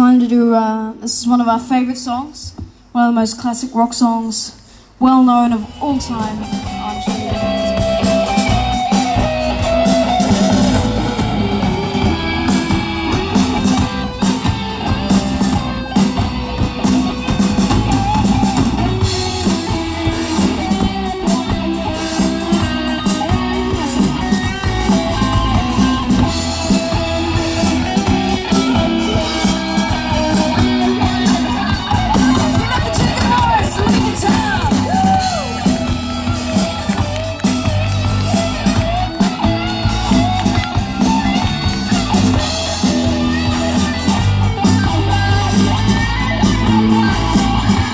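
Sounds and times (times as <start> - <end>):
distorted electric guitars: 5.0 - 47.9
bass guitar: 5.3 - 47.9
drum kit: 5.5 - 47.9.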